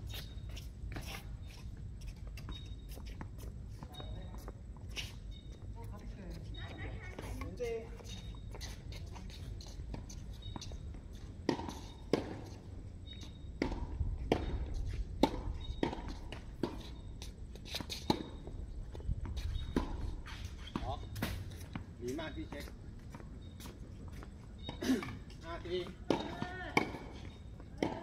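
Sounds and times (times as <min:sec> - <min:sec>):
ball bouncing on hard court: 0:25.8 - 0:28.0.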